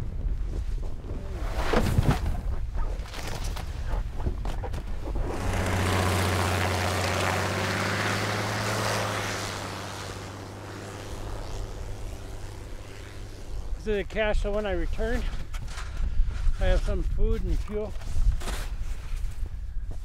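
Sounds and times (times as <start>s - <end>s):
propeller plane engine hum: 2.3s - 16.6s.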